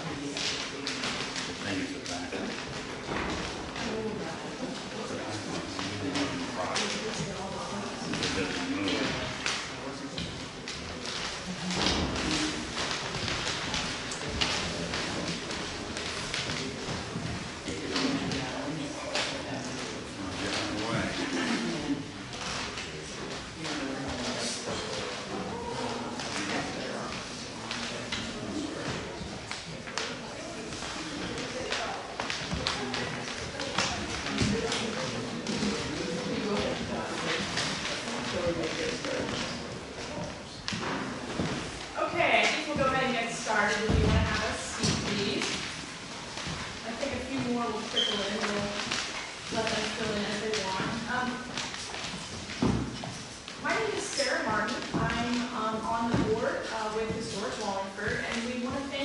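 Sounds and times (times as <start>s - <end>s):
people chattering: 0.0s - 59.0s.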